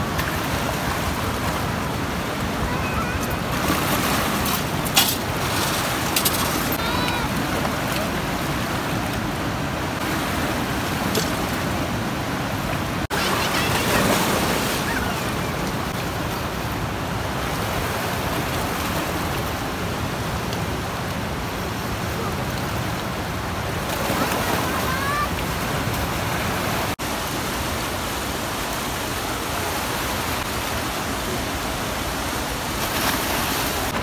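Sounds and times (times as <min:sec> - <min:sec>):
river rushing over boulders: 0:00.0 - 0:34.0.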